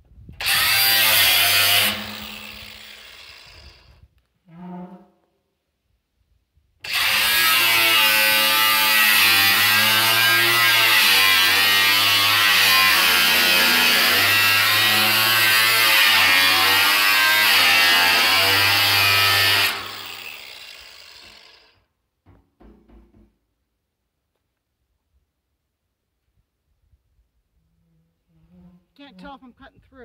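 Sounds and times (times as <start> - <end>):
angle grinder cutting steel: 0.4 - 3.8, 6.8 - 21.8.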